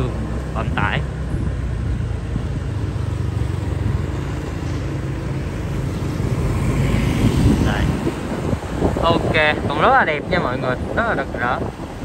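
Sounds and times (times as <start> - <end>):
road noise: 0.0 - 12.0.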